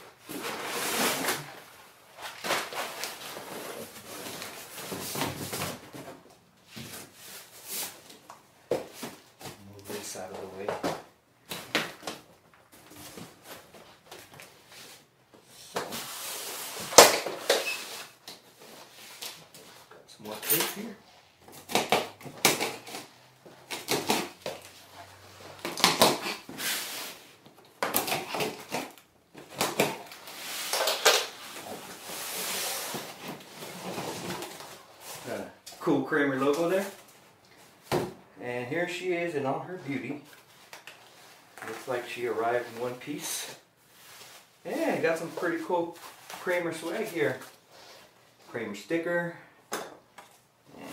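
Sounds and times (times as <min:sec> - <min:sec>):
cardboard boxes scraping and rustling: 0:00.3 - 0:08.0, 0:31.4 - 0:35.3.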